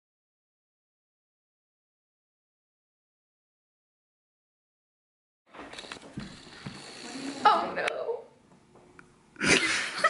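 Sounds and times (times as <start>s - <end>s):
people rustling on a couch: 5.5s - 7.5s.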